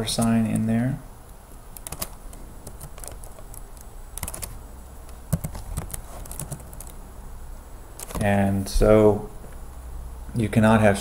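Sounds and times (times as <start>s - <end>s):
computer keyboard typing: 1.8s - 7.0s, 8.0s - 8.2s.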